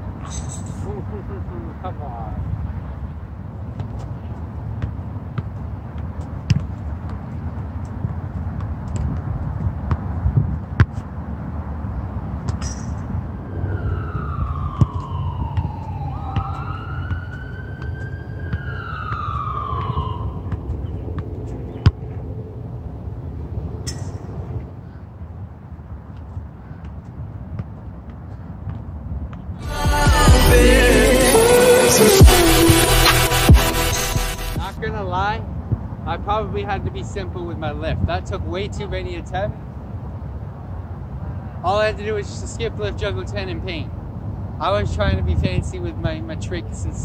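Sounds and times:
ball kicks thudding: 4.8 - 7.3, 8.0 - 11.1
siren wailing: 13.3 - 21.2, 29.6 - 34.8.

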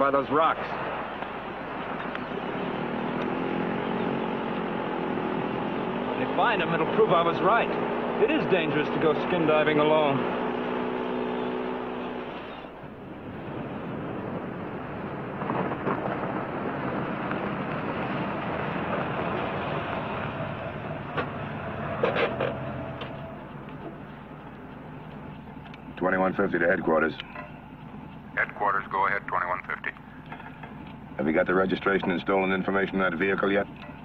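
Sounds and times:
car engine and road noise: 0.0 - 34.0.

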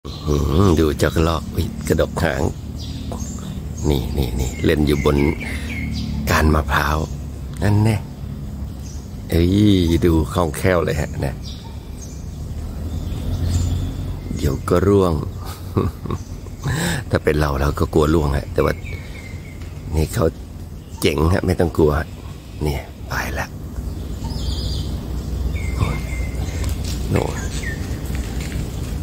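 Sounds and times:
bird calling: 0.0 - 29.0
motor vehicle rumbling: 0.0 - 29.0.

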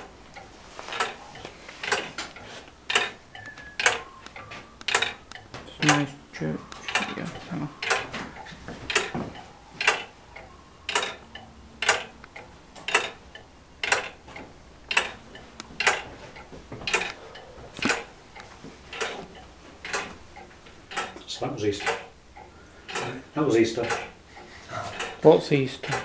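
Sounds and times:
clock mechanism ticking: 0.0 - 26.0.

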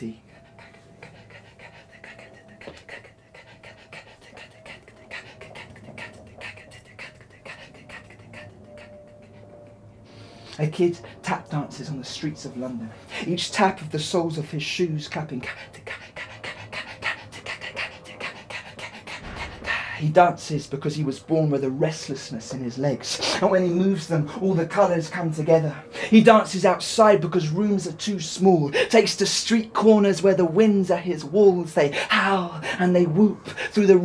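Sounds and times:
man's vocal percussion: 0.0 - 9.4, 13.1 - 23.6.

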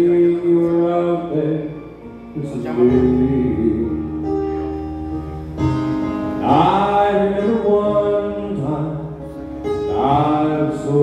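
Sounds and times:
man singing country ballad: 0.0 - 4.1, 6.4 - 11.0
musical accompaniment: 0.0 - 11.0.

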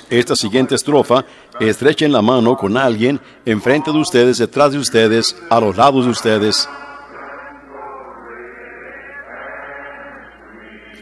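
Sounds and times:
congregation singing a hymn: 3.7 - 11.0.

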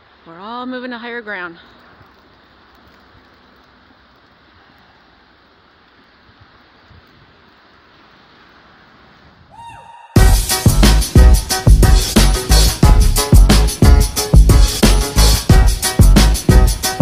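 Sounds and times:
faint outdoor background hiss: 0.0 - 17.0
small ticks: 1.7 - 5.0.

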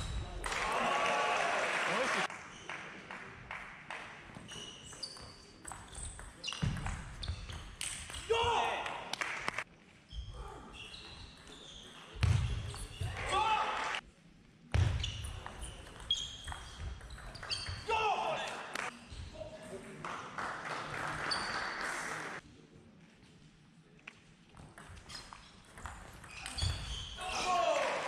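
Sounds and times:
people shouting: 27.2 - 28.0.

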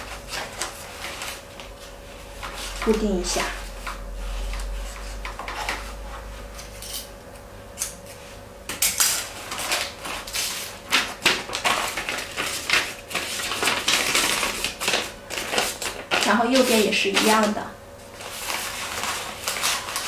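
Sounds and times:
paper rustling and crinkling: 0.0 - 6.5, 9.1 - 20.0.

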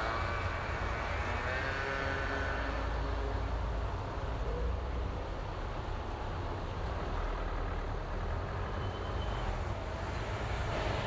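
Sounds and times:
car engine and tyre rumble: 0.0 - 11.0.

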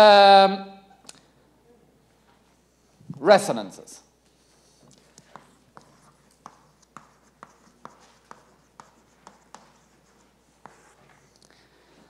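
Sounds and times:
chalk scraping: 4.4 - 11.4
chalk tapping on blackboard: 4.8 - 11.3.

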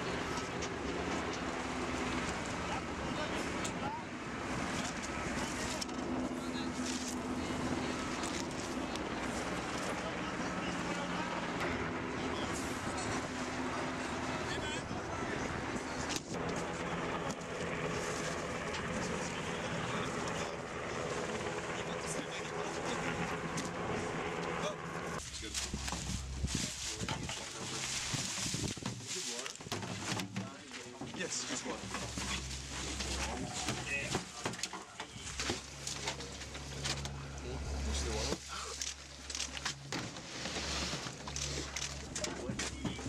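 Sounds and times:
engine running: 0.0 - 43.0.

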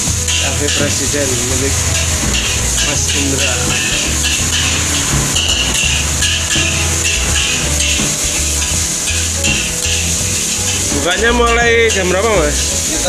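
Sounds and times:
spatula stirring in wok: 0.0 - 11.1
rice sizzling in a hot wok: 0.0 - 11.3
background music with a beat: 0.0 - 13.0.

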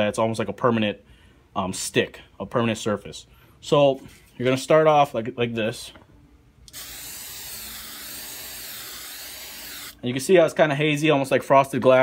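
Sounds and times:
aerosol can spraying hiss: 6.7 - 10.0.

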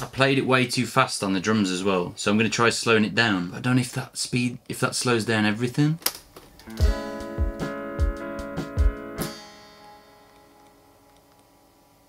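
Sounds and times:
electric guitar chord ringing: 6.6 - 11.4.

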